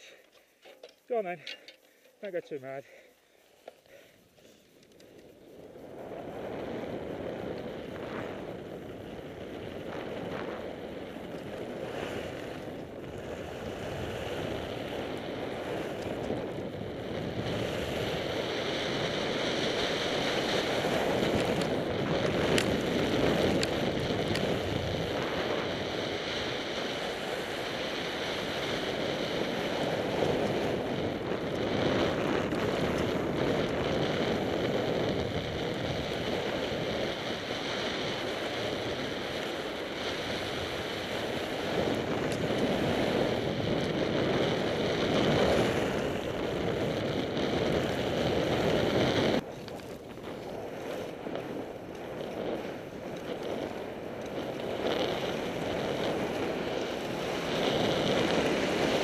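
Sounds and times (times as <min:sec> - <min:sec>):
skis carving snow: 0:00.0 - 0:59.0
wind buffeting microphone: 0:04.8 - 0:59.0.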